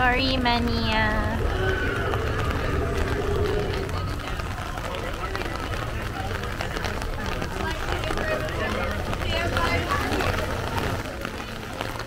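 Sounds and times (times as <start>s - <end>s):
faint voices: 0.0s - 12.0s
low outdoor rumble: 0.0s - 12.0s.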